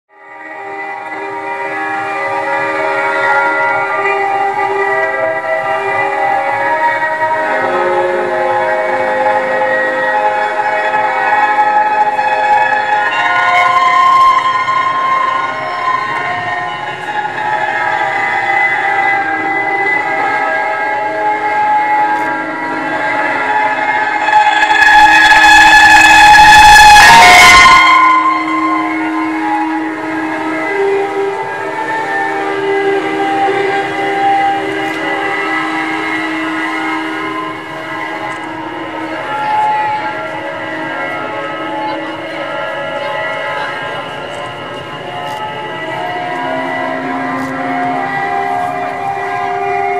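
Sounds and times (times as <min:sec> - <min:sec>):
piano string drone tones: 0:00.1 - 0:49.9
loud harsh swell: 0:00.3 - 0:49.9.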